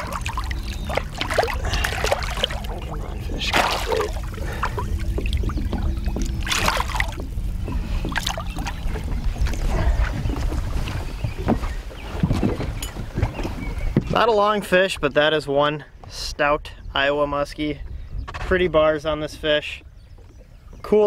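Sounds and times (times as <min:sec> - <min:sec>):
steady low hum: 0:00.0 - 0:11.4
water splashing: 0:00.0 - 0:11.6
wind rumble on microphone: 0:00.0 - 0:15.2, 0:15.9 - 0:21.0.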